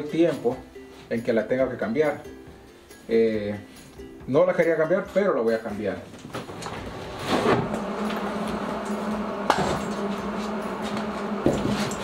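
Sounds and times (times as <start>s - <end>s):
rolling bag wheels rumbling: 6.4s - 12.0s.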